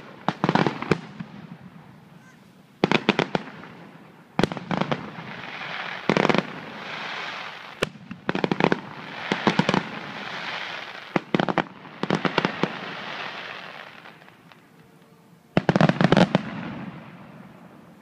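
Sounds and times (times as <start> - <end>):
fireworks bangs: 0.0 - 14.8, 15.5 - 17.9
fireworks crackling pops: 0.0 - 18.0.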